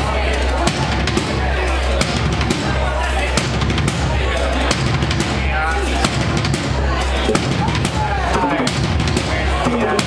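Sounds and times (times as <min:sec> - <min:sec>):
drum kit played hard: 0:00.0 - 0:10.0
heavy low bass: 0:00.0 - 0:10.0.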